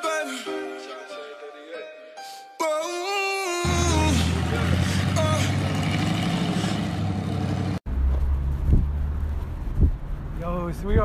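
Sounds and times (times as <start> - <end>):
car engine low rumble: 3.7 - 11.0.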